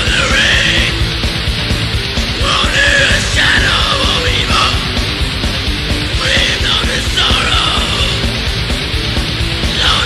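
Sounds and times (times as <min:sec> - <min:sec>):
harsh shrieked vocals: 0:00.0 - 0:01.2, 0:02.3 - 0:05.3, 0:06.1 - 0:08.4, 0:09.6 - 0:10.0
distorted guitars: 0:00.0 - 0:10.0
fast dense drumming: 0:00.0 - 0:10.0.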